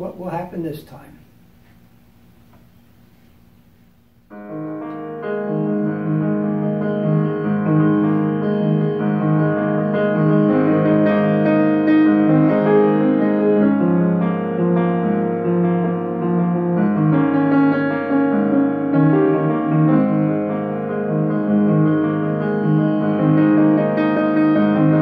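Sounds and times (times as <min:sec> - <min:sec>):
solo grand piano chords: 0:04.3 - 0:25.0.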